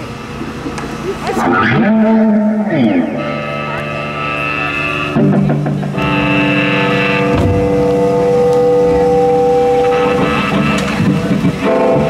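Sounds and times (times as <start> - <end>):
electric guitar sustained note: 1.2 - 12.0
high guitar feedback tone: 1.3 - 12.0.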